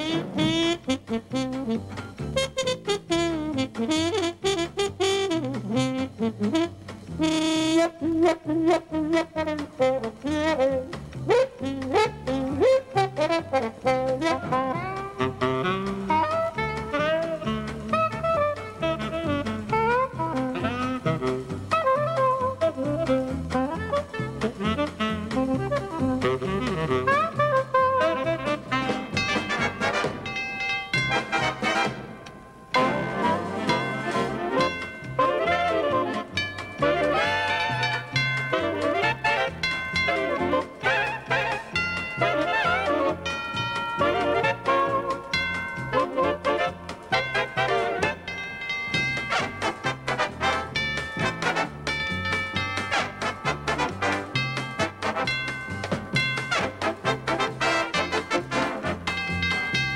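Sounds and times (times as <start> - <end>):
big band swing music: 0.0 - 59.9
trombone: 0.0 - 59.9.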